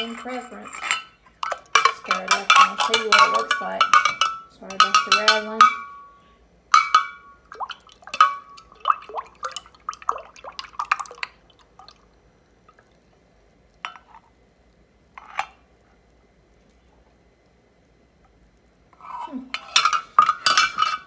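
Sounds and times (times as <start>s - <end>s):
metal ladle clinking glass jar: 0.8s - 6.0s.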